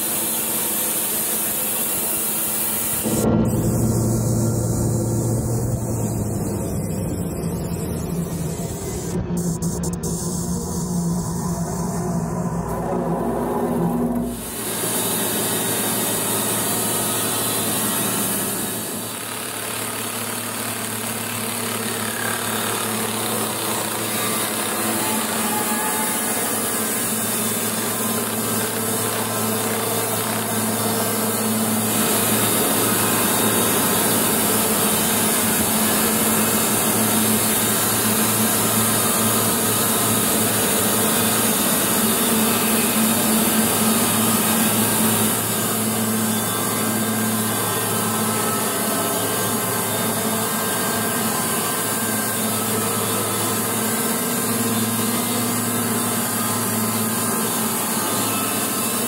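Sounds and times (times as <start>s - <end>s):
band sawmill cutting log: 0.0s - 6.6s, 12.6s - 59.0s.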